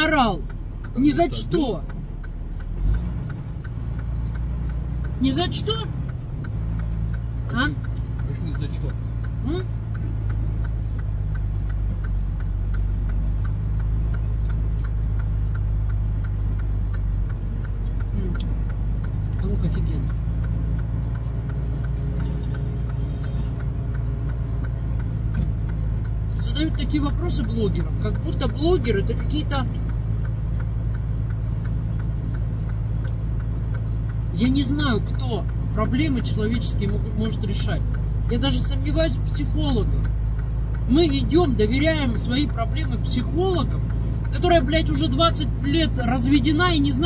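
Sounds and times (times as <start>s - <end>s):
diesel truck engine idling: 0.0s - 47.0s
light even ticking: 0.0s - 47.0s.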